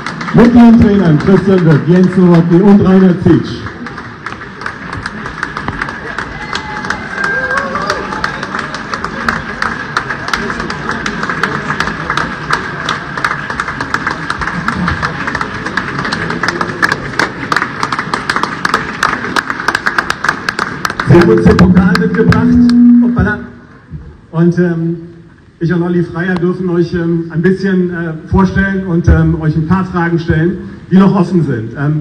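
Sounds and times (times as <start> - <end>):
audience applauding: 0.0 - 23.4
crowd chattering: 0.0 - 24.3.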